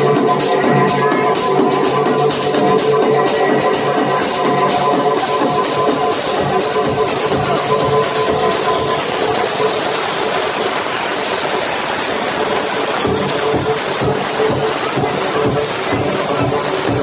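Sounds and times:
loud electronic dance music: 0:00.0 - 0:17.0.

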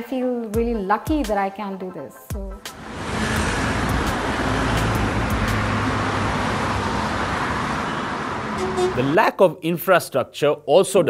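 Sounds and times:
road traffic noise: 0:02.7 - 0:09.2
low hum: 0:02.8 - 0:09.0.

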